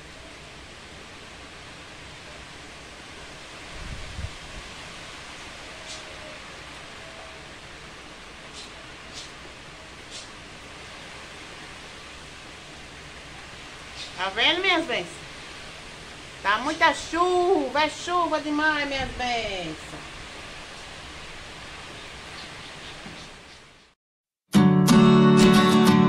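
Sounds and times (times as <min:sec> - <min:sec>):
heavy rain falling: 0:00.0 - 0:23.8.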